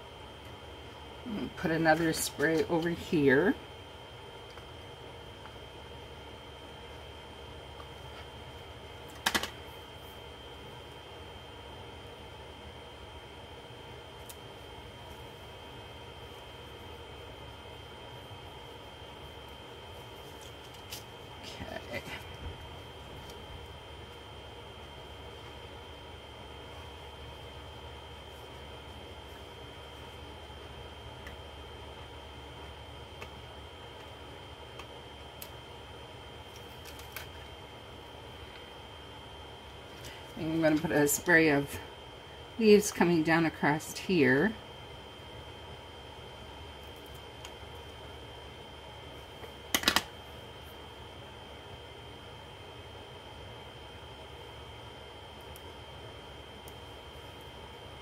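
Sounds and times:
low room hum: 0.0 - 58.0
correction tape clicks on paper: 49.7 - 50.1.

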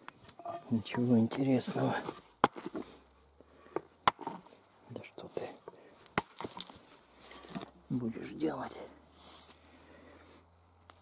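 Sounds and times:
hammer cracking rock: 2.4 - 2.9, 4.0 - 4.5, 6.1 - 6.8.

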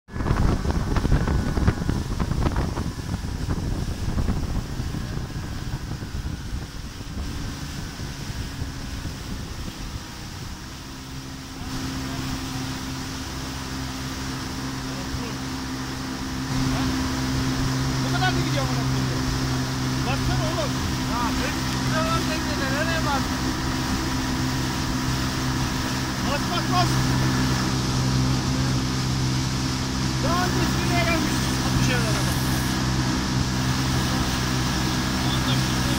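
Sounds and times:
outboard motor running: 0.1 - 35.9
water rushing and spraying: 0.1 - 35.9
wind buffeting microphone: 0.1 - 35.9.

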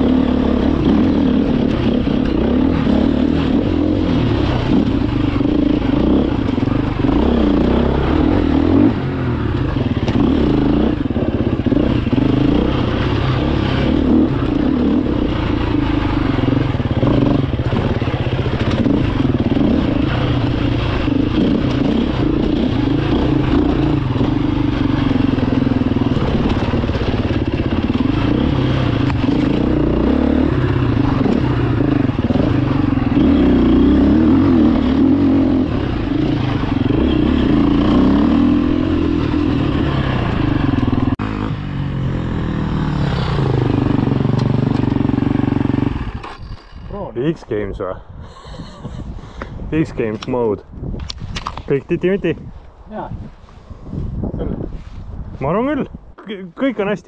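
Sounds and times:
motorcycle engine revving: 0.0 - 47.6.

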